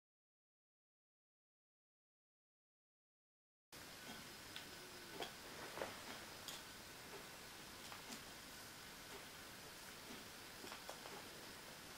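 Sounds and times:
faint steady hiss: 0:03.8 - 0:11.9.

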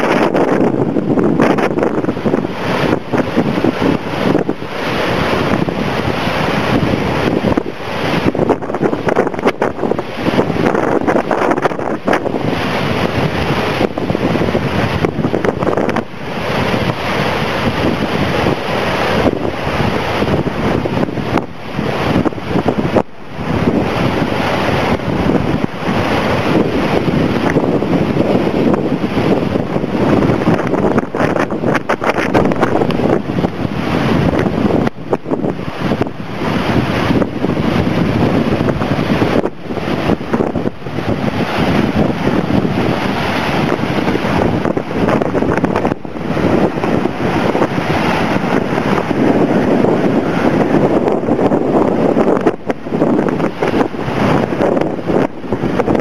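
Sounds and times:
surf breaking over rocks: 0:00.0 - 0:56.0
wind buffeting microphone: 0:00.0 - 0:56.0.

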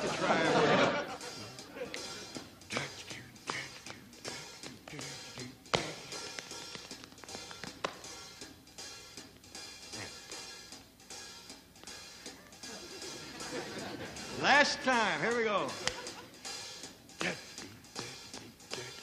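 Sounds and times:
faint band music: 0:00.0 - 0:19.0
sharp foot strikes: 0:05.7 - 0:08.2.

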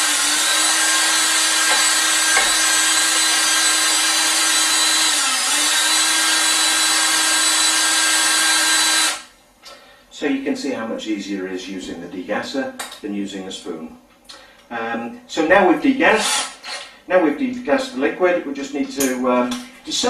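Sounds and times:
power drill whining: 0:00.0 - 0:09.3, 0:16.2 - 0:16.9.

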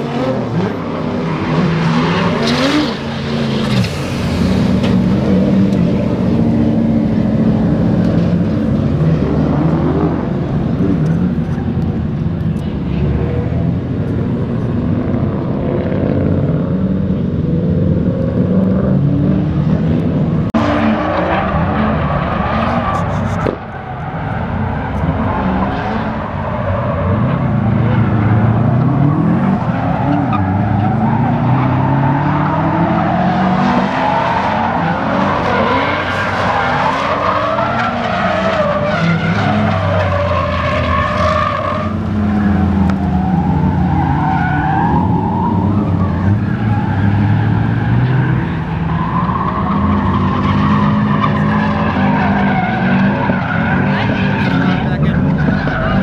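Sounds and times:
tyres squealing and skidding: 0:00.0 - 0:12.1, 0:20.6 - 0:56.0
car engines revving: 0:00.0 - 0:56.0.

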